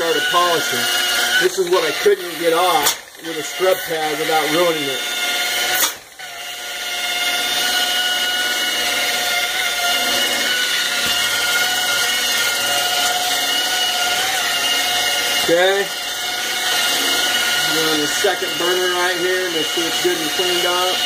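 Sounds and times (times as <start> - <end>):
rotary polisher motor whine: 0.0 - 21.0.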